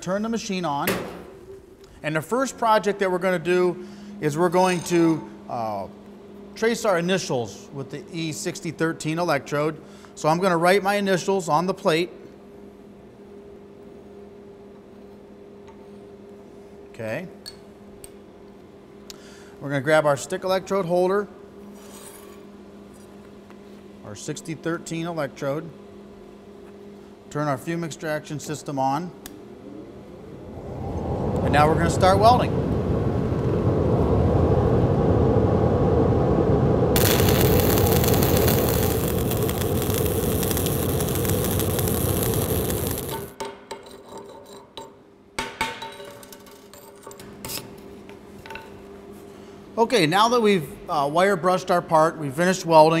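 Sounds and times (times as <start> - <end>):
steady rushing noise: 29.6 - 43.4
welding power source humming: 36.2 - 43.4.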